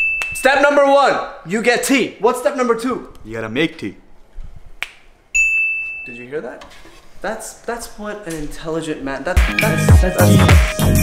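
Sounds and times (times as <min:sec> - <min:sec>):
loud bell-like ding: 0:05.4 - 0:06.3.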